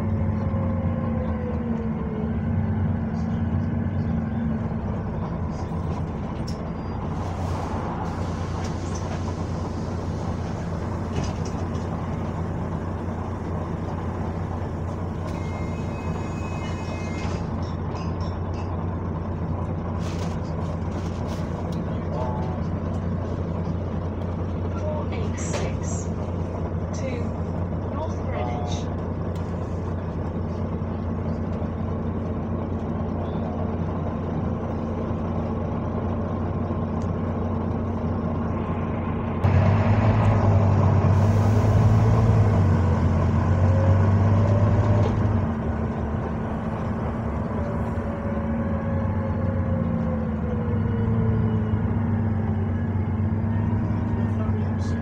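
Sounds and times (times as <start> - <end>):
bus engine running: 0.0 - 55.0.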